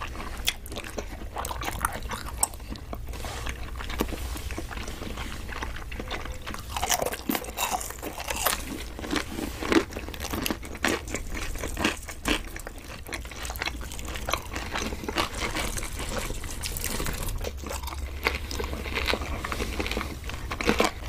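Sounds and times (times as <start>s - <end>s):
crunchy chewing: 0.0s - 21.0s
steady low hum: 0.0s - 21.0s.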